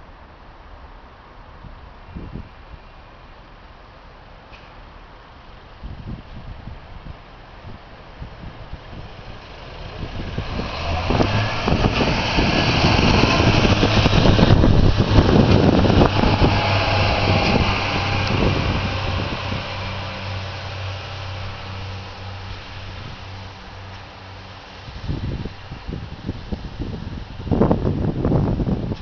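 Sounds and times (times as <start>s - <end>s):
low diesel engine drone: 1.9s - 29.0s.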